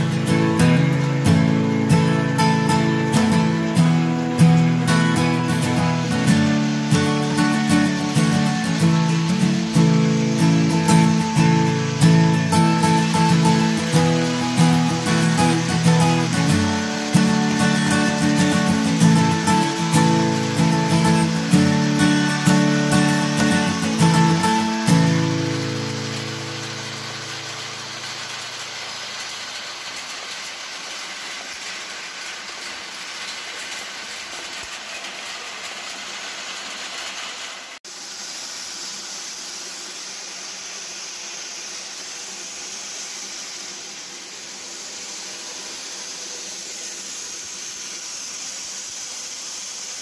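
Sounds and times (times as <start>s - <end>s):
acoustic guitar chord: 0.0s - 28.6s
dehusking machine whirring rattle: 0.0s - 50.0s.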